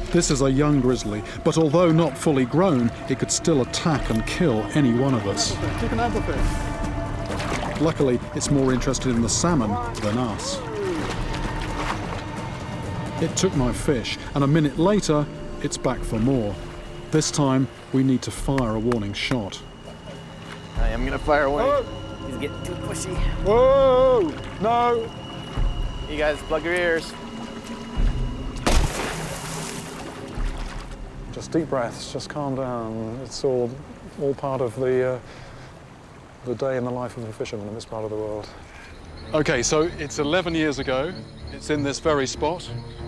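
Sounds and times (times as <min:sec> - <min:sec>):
background music with held tone: 0:00.0 - 0:33.9, 0:38.2 - 0:43.0
bear splashing through water: 0:28.6 - 0:31.0.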